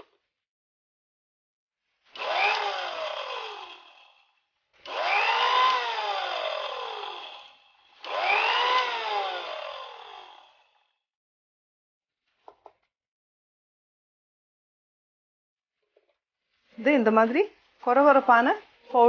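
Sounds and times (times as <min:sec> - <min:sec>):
mixer grinder whining: 0:02.0 - 0:11.0.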